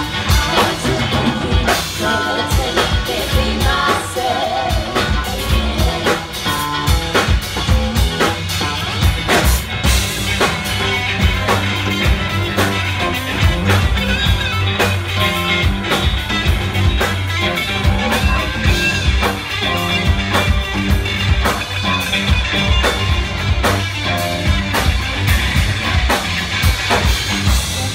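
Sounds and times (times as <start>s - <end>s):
funk band instrumental groove: 0.0s - 27.9s.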